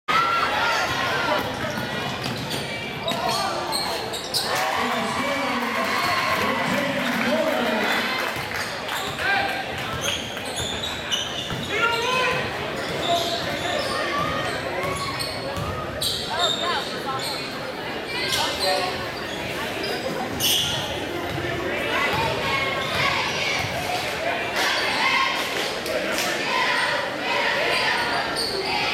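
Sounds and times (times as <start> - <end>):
players and spectators shouting: 0.1 - 2.2, 2.8 - 8.4, 11.6 - 16.4, 21.5 - 28.9.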